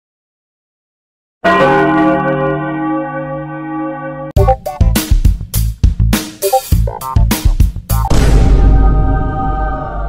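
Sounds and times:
deep bell tone: 0:01.5 - 0:04.4.

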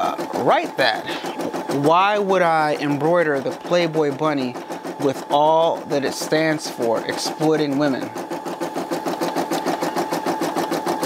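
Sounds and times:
embroidery machine stitching: 0:00.0 - 0:11.0.

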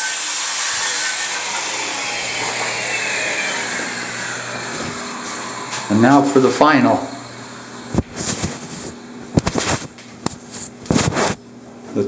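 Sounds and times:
cloth rubbing against microphone: 0:07.9 - 0:11.4.

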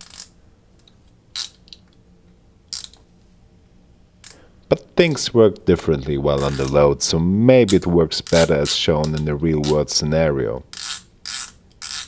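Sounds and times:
ratchet clicking: 0:10.7 - 0:12.0.

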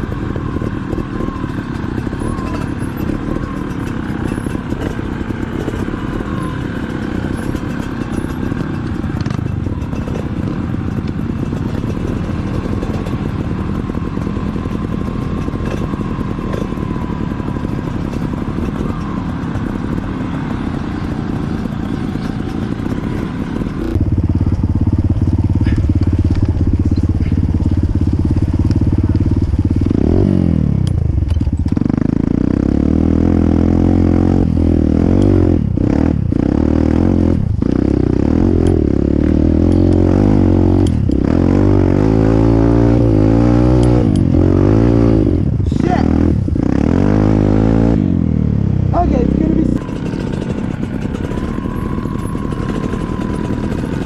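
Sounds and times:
dirt bike engine revving close: 0:00.0 - 0:54.0
distant dirt bike engines: 0:00.0 - 0:54.0.

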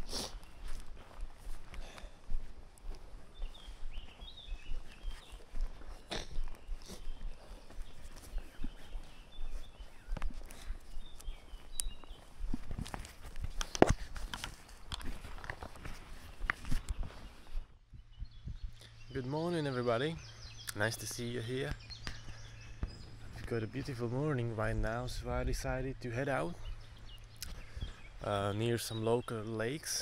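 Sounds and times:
footsteps on grass: 0:00.0 - 0:29.9
bird chirps: 0:03.3 - 0:13.8, 0:15.2 - 0:30.0.

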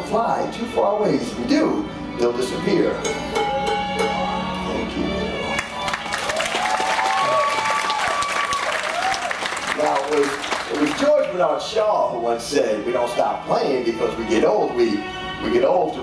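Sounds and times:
music with gliding notes: 0:00.0 - 0:06.6, 0:10.7 - 0:16.0
audience applause: 0:05.6 - 0:11.3.

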